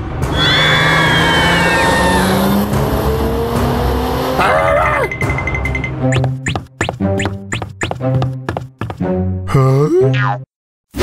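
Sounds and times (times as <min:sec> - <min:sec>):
cartoon bus engine running: 0:00.0 - 0:09.0.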